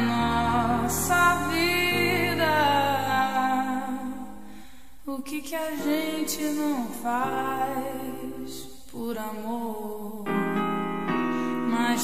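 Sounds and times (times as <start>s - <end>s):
wavering vocal note: 0.0s - 4.5s.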